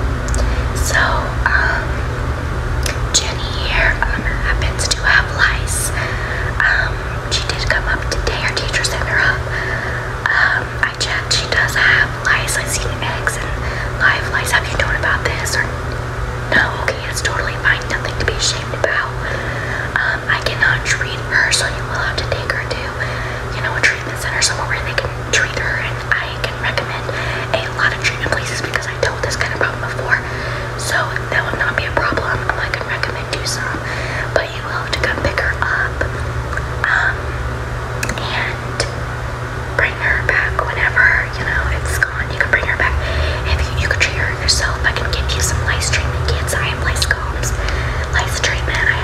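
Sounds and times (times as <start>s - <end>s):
steady low hum: 0.0s - 49.0s
girl whispering: 2.8s - 9.5s, 10.2s - 15.7s, 38.0s - 38.9s, 39.8s - 49.0s.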